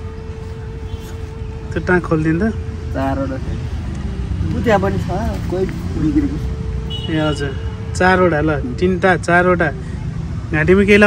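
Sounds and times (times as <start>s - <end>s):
road traffic rumble: 0.0s - 11.0s
voices talking: 0.0s - 11.0s.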